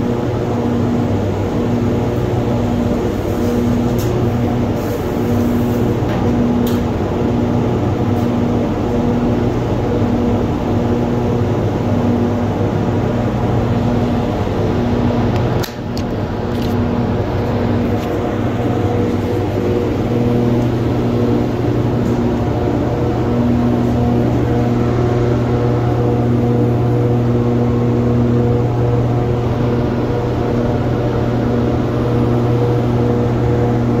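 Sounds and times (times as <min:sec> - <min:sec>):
fans humming: 0:00.0 - 0:34.0.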